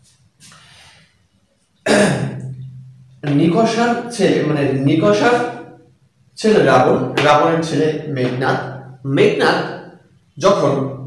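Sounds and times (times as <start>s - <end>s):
man clearing his throat: 1.8s - 2.4s.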